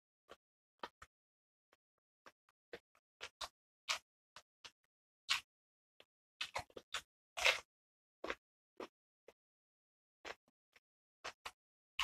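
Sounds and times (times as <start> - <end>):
crunchy vegetable being chewed: 2.7 - 4.0, 5.3 - 5.5, 6.4 - 8.9.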